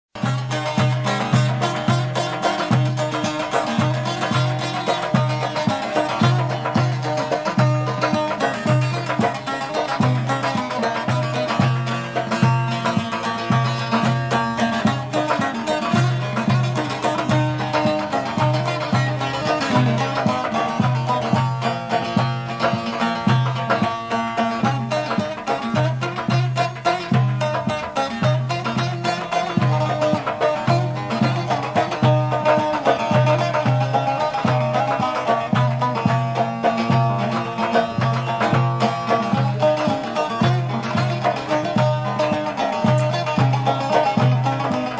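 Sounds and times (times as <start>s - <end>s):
instrumental folk tune: 0.1s - 44.9s
hand drum rhythm: 0.2s - 44.9s
plucked string melody: 0.2s - 44.9s.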